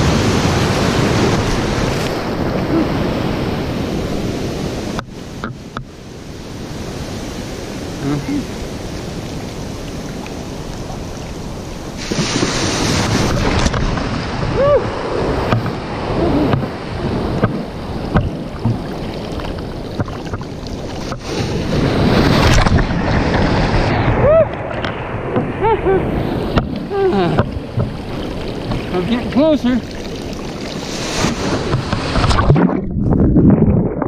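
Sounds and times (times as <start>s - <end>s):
ocean surf washing: 0.0s - 34.0s
wind on microphone: 0.0s - 34.0s
water bubbling gurgles: 15.4s - 21.8s, 25.6s - 34.0s
rushing foam surges: 20.7s - 34.0s.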